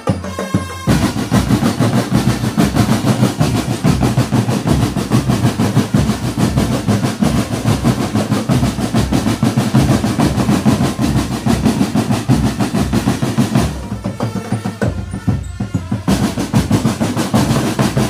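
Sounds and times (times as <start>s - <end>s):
marching drum band playing: 0.0s - 18.0s.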